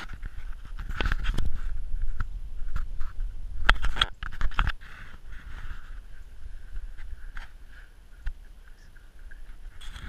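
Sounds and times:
camera jostling rumble: 0:00.0 - 0:10.0.

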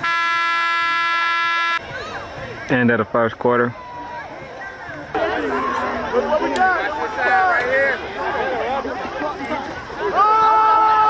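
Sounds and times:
scoreboard horn blast: 0:00.0 - 0:01.8.

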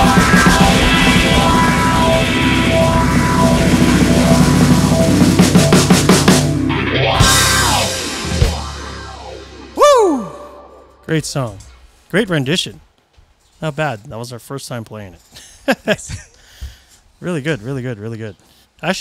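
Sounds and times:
live rock band playing: 0:00.0 - 0:10.9
note sliding down in pitch: 0:00.0 - 0:11.1.

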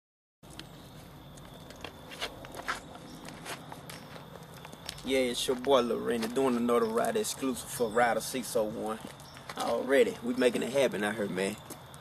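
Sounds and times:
footsteps: 0:00.5 - 0:07.8, 0:08.5 - 0:11.0.

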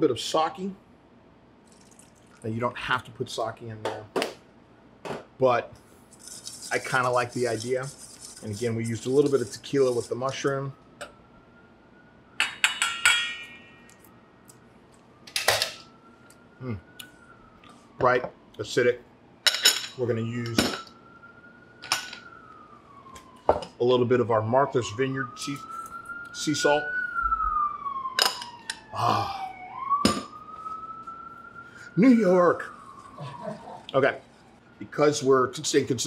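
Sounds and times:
faint siren rising in pitch: 0:06.2 - 0:19.4, 0:20.0 - 0:36.0
metal spoon clinking on bowl: 0:12.4 - 0:14.0.

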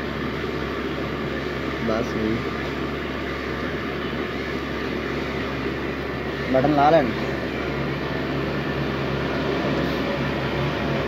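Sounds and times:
constant rushing noise: 0:00.0 - 0:11.0.

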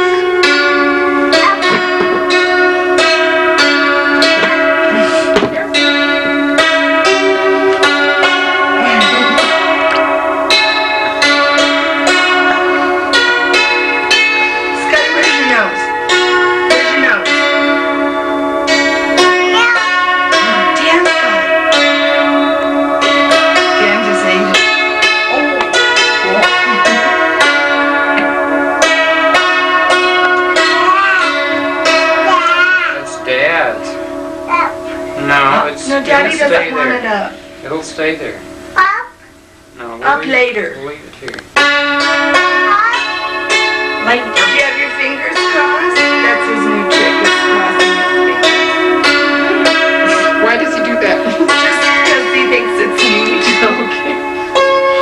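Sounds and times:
electronic keyboard bell-like notes: 0:00.0 - 0:40.9, 0:41.5 - 0:55.0
young child's voice: 0:01.3 - 0:02.2, 0:19.5 - 0:20.1, 0:30.8 - 0:33.2, 0:34.5 - 0:35.0, 0:38.8 - 0:39.3, 0:42.6 - 0:43.2.

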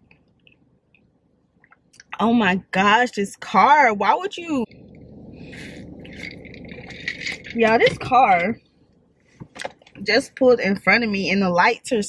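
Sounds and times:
low rumble inside a car: 0:04.6 - 0:08.6
faint liquid gurgles: 0:04.6 - 0:08.7
slurp through a straw: 0:04.7 - 0:07.8.

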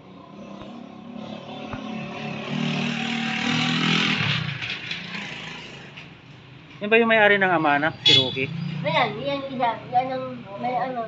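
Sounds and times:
vehicle engine passing by: 0:00.1 - 0:06.0, 0:07.2 - 0:11.0.

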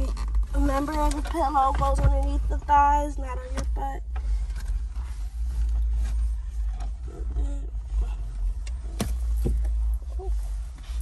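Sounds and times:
low rumble inside car cabin: 0:00.0 - 0:11.0
rustling on leather seat: 0:00.0 - 0:11.0.

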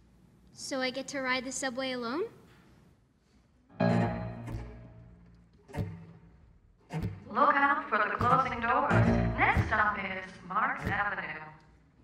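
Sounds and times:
strings and piano playing: 0:03.8 - 0:05.4.

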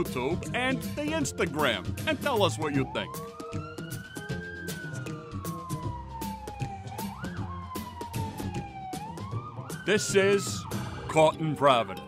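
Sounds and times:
siren wailing: 0:01.9 - 0:12.0.

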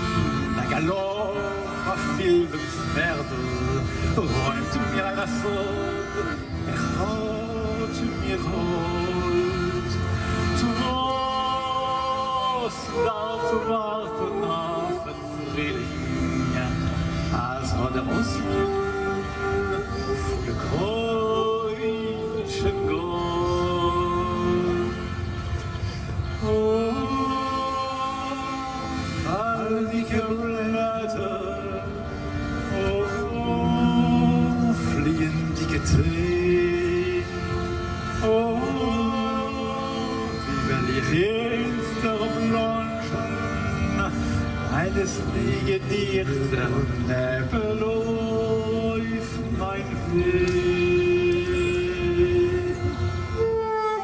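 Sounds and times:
saxophone melody: 0:00.0 - 0:30.6, 0:31.2 - 0:49.2, 0:50.0 - 0:54.0
accordion chords: 0:00.0 - 0:54.0.

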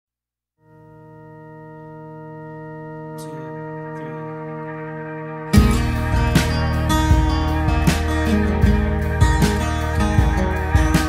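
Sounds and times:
sustained organ chord: 0:00.6 - 0:11.0.

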